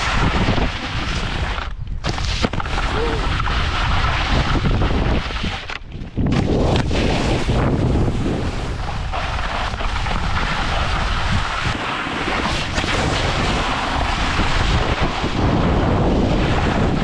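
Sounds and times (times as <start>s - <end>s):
snowboard scraping over snow: 0.0s - 5.7s, 6.3s - 17.0s
wind buffeting microphone: 0.0s - 17.0s.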